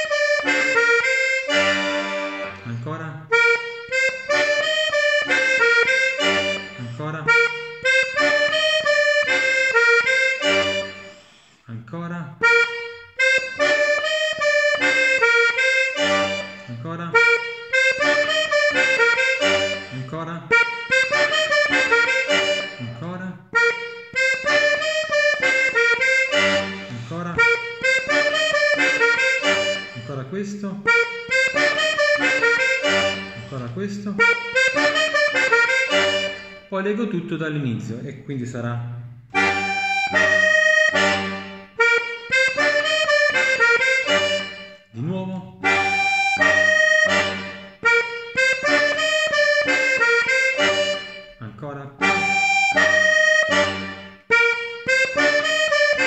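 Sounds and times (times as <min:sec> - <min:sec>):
button accordion playing: 0:00.0 - 0:11.7, 0:12.4 - 0:37.1, 0:39.1 - 0:56.0.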